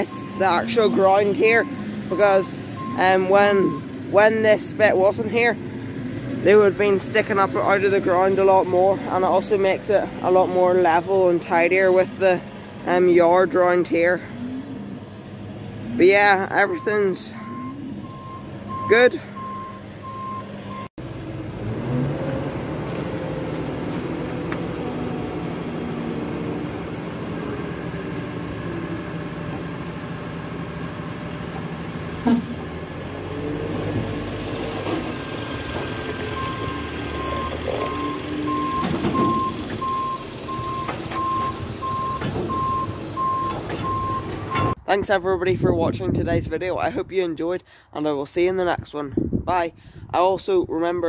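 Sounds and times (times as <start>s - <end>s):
beeping warning alarm: 0.0s - 3.9s, 16.4s - 20.9s, 36.3s - 44.8s
trailer tipping load: 0.0s - 44.9s
tractor engine running: 0.0s - 46.5s.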